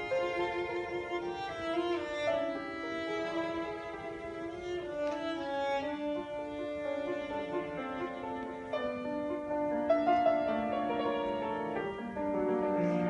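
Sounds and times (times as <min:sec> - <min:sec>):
cello playing bowed melody: 0:00.0 - 0:13.0.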